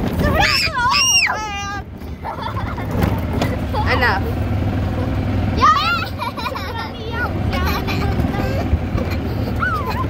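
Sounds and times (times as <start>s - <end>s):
cart rumbling on dirt track: 0.0s - 10.0s
high-pitched voice crying out: 0.4s - 1.7s.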